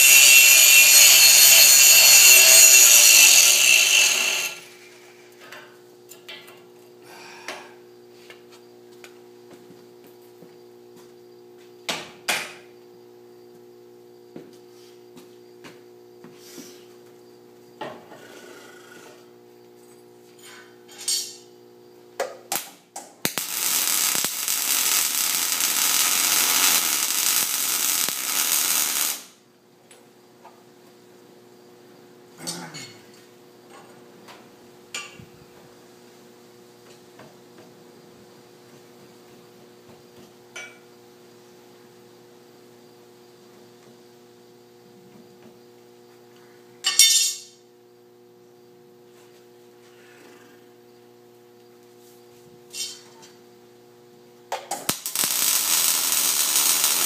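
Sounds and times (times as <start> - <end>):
angle grinder grinding steel: 0.0 - 4.8, 23.4 - 29.2, 55.0 - 57.0
welding: 0.0 - 4.8, 23.2 - 29.4, 54.8 - 57.0.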